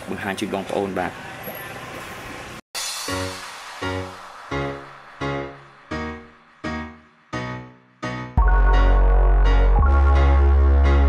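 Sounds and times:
short bright hiss: 2.8s - 6.5s.

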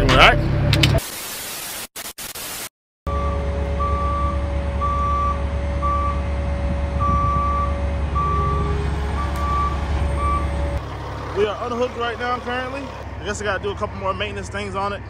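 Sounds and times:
static hiss: 1.0s - 2.7s
backup alarm beeping: 3.1s - 6.3s, 7.0s - 10.7s
diesel engine running: 3.1s - 15.0s.

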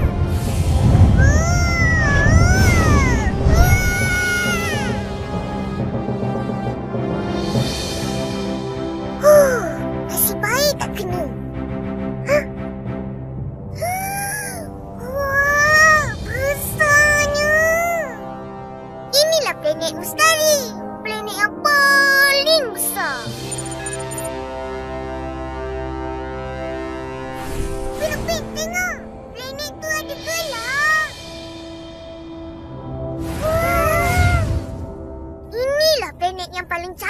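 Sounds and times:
low rumble: 0.0s - 6.3s
music: 0.0s - 37.0s
cartoon children exclaiming: 1.2s - 5.0s, 13.8s - 18.2s, 28.1s - 31.2s, 33.4s - 34.6s, 35.6s - 36.6s
cartoon children whooping: 1.2s - 5.0s, 33.4s - 34.5s.

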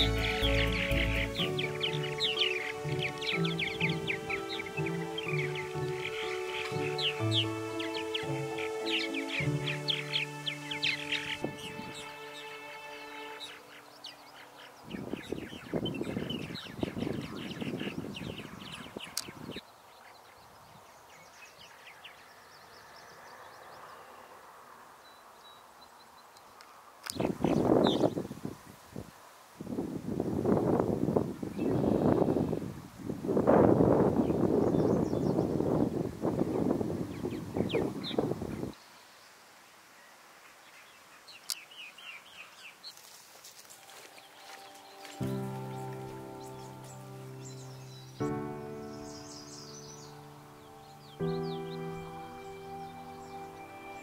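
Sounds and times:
gentle background music: 0.0s - 14.8s, 43.5s - 54.0s
small birds chirping: 0.0s - 28.5s, 31.2s - 32.8s, 33.8s - 54.0s.

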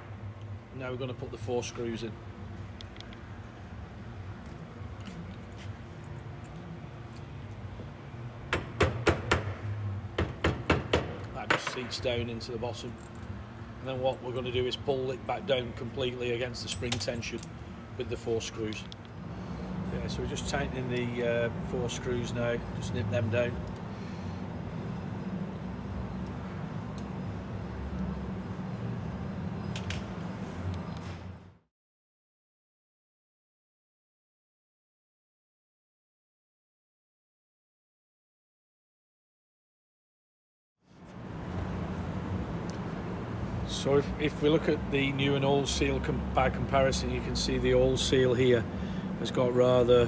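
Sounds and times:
machinery hum: 0.0s - 31.6s, 40.9s - 50.0s
hammer knocking on metal tool: 8.5s - 9.6s, 10.2s - 12.0s.

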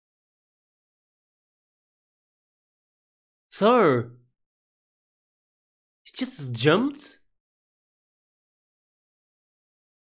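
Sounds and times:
man speaking: 3.5s - 4.2s, 6.1s - 7.2s.

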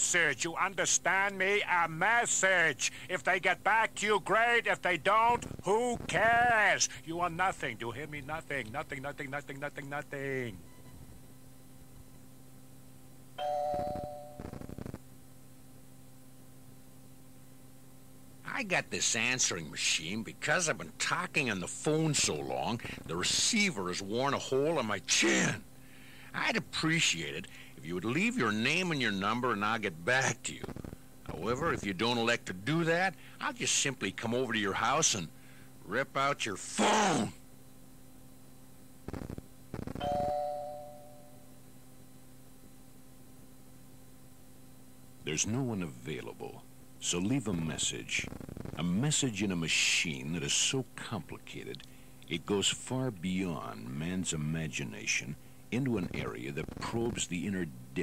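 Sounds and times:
tape hiss: 0.0s - 58.0s
crackly noise bursts: 5.2s - 6.9s, 14.4s - 15.1s, 30.2s - 31.8s, 38.9s - 40.0s, 48.0s - 48.8s, 56.0s - 57.3s.

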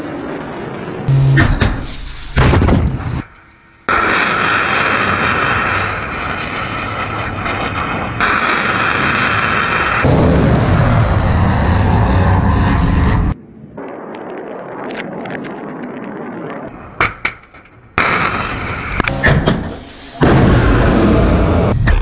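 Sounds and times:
rocket motor rush: 3.9s - 13.4s.

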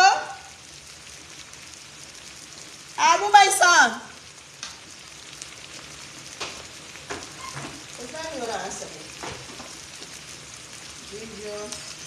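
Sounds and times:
woman calling: 0.0s - 0.5s
steaks sizzling on a griddle: 0.0s - 12.0s.

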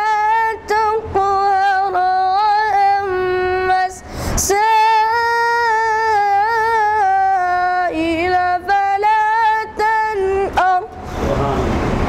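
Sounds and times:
quick breath: 4.0s - 4.4s.

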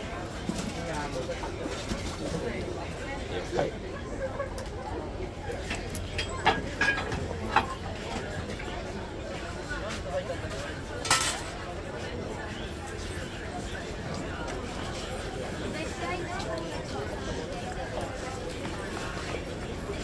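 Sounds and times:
background chatter of voices: 0.0s - 20.0s.

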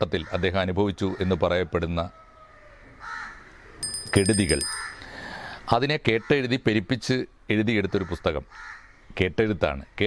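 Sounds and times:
high-pitched ringing chime: 3.8s - 5.0s.

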